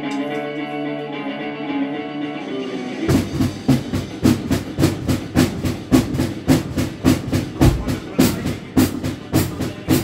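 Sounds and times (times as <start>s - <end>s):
recorded rockabilly song: 0.0s - 10.0s
drum kit fast beat: 3.1s - 10.0s.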